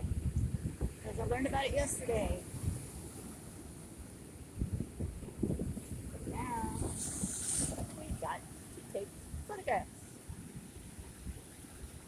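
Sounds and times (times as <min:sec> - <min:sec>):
wind buffeting microphone: 0:00.0 - 0:12.0
waves washing against rocks: 0:04.9 - 0:09.7.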